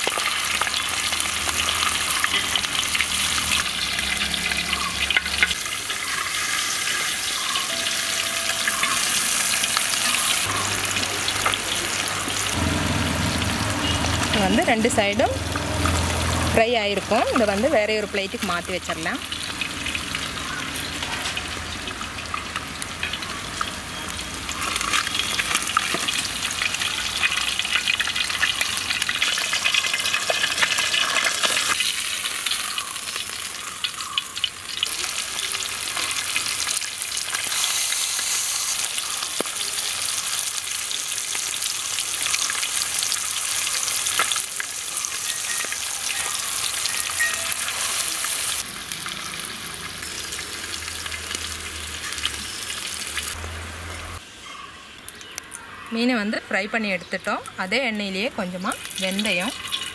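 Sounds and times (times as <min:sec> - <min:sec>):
fish sizzling in hot oil: 0:00.0 - 0:54.3, 0:57.2 - 0:59.9.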